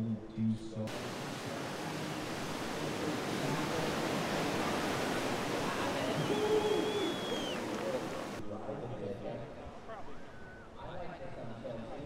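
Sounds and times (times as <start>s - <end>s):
faint voices: 0.9s - 8.4s
ocean waves breaking: 0.9s - 8.4s.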